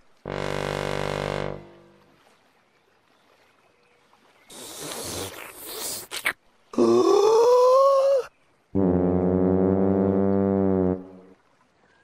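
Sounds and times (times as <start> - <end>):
low sousaphone note: 0.2 - 2.0.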